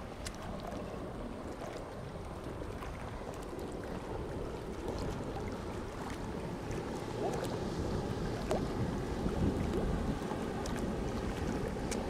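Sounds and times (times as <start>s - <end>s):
water lapping against concrete: 0.0s - 12.0s
wind buffeting microphone: 0.0s - 12.0s.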